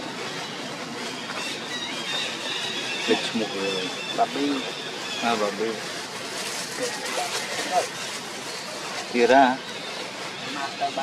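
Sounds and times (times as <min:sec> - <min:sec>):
outdoor hiss: 0:00.0 - 0:11.0.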